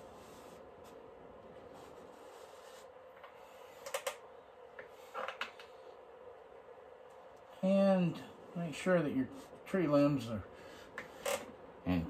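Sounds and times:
faint steady hum: 0:00.0 - 0:12.0
man speaking: 0:07.6 - 0:10.5.

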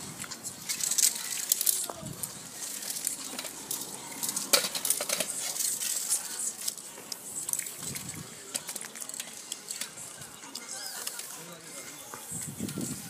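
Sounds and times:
metallic clicks of cans: 0:02.6 - 0:06.8.

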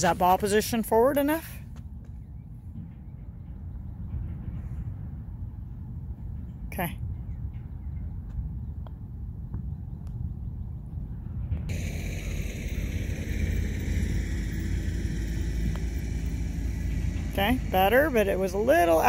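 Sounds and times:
low outdoor rumble: 0:00.0 - 0:19.0.

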